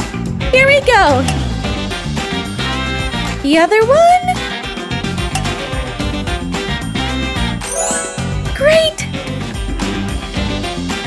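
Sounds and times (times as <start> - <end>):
background music: 7.6 - 9.4.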